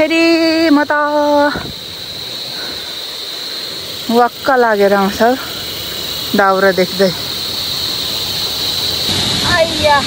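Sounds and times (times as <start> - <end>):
stream rushing over stones: 5.6 - 10.0.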